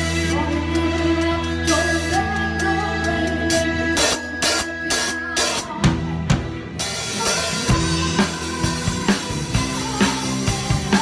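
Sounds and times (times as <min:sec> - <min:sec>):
backing track music: 0:00.0 - 0:11.0
drum kit playing: 0:00.0 - 0:11.0.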